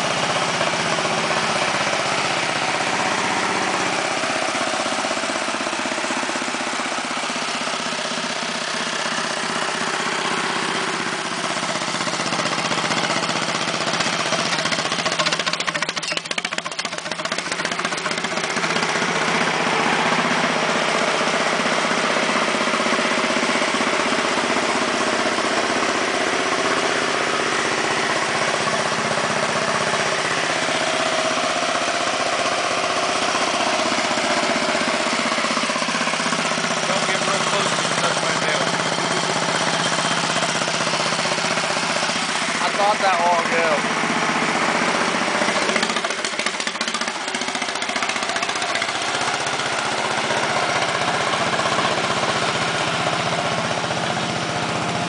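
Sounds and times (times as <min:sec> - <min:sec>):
small tractor engine idling: 0:00.0 - 0:55.0.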